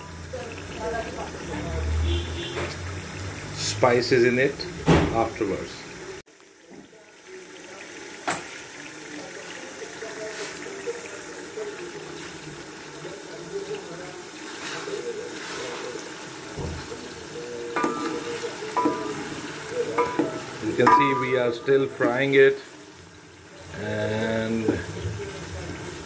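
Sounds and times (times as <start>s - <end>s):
meat sizzling in oil: 0.0s - 26.0s
wooden spoon stirring: 13.6s - 17.1s, 17.8s - 22.6s.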